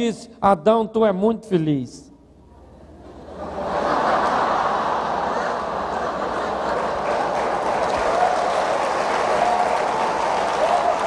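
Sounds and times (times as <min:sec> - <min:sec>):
audience laughing: 0:02.8 - 0:08.1
audience applauding: 0:04.2 - 0:11.0.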